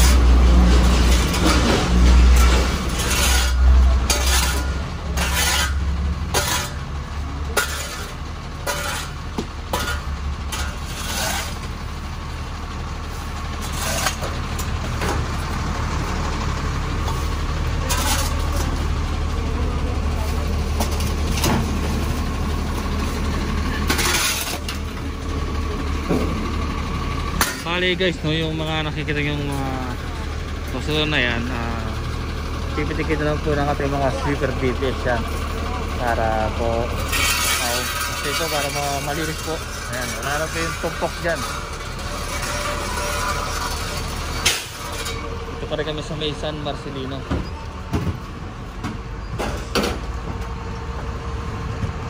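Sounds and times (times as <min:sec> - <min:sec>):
shovel scraping concrete: 0:00.0 - 0:06.9, 0:07.5 - 0:11.8, 0:17.8 - 0:18.8, 0:23.8 - 0:24.8, 0:36.0 - 0:45.3
brooms sweeping concrete: 0:00.0 - 0:12.1, 0:17.0 - 0:25.2, 0:34.2 - 0:45.8
truck engine idling: 0:00.0 - 0:52.0.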